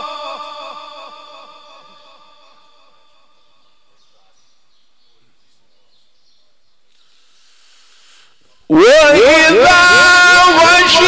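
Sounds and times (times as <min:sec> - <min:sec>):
man chanting melodic recitation: 0:08.6 - 0:11.0.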